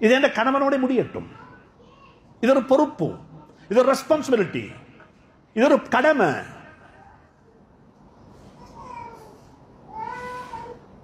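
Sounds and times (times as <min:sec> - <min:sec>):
soft high-pitched cry: 0:08.5 - 0:11.0.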